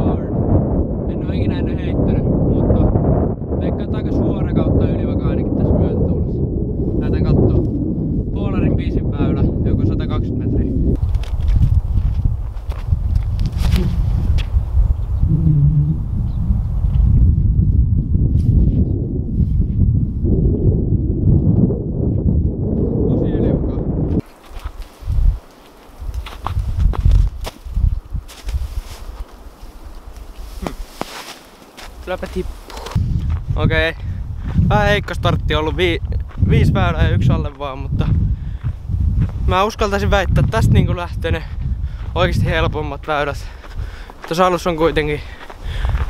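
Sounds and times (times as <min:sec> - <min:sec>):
microphone handling noise: 0:00.0 - 0:42.9, 0:45.4 - 0:46.0
wind rumble on microphone: 0:00.0 - 0:46.0
footsteps in snow: 0:24.2 - 0:33.5.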